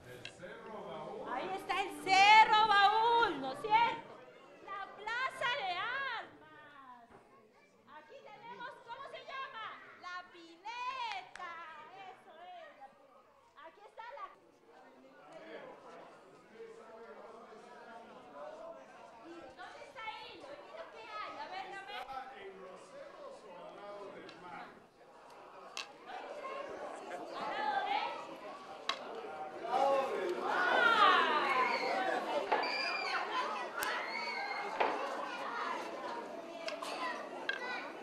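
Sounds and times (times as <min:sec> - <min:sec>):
chatter of several voices: 0:00.0 - 0:38.0.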